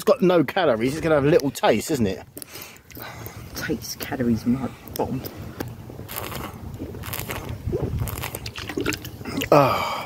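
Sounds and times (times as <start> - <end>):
man gulping and swallowing: 4.9 - 10.0
liquid sloshing in plastic bottle: 6.1 - 9.5.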